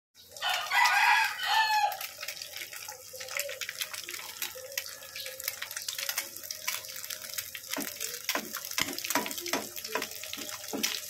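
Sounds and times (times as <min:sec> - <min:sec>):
rooster crowing: 0:00.4 - 0:02.1.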